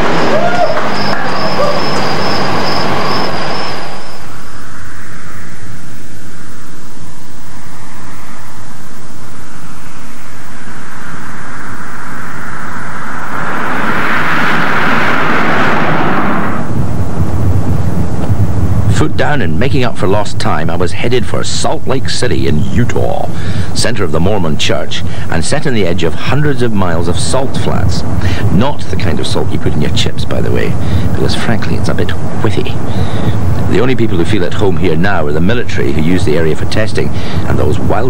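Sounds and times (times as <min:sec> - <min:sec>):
car engine drone from inside: 0:00.0 - 0:19.0
car passing by: 0:10.6 - 0:16.8.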